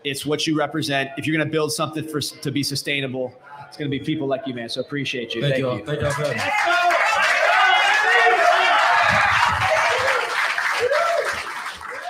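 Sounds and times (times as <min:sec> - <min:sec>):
audience applauding and cheering: 0:06.0 - 0:12.0.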